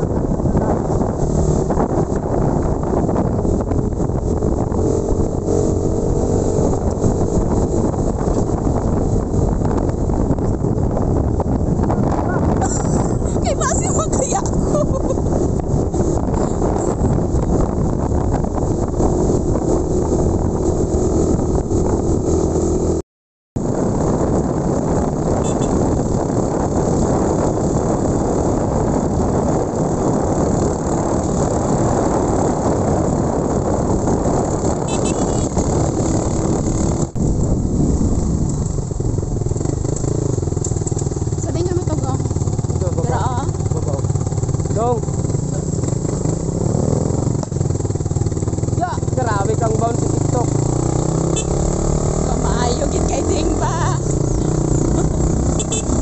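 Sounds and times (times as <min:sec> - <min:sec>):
motorcycle engine running: 0:00.0 - 0:23.0, 0:23.7 - 0:56.0
wind buffeting microphone: 0:00.0 - 0:23.0, 0:23.6 - 0:56.0.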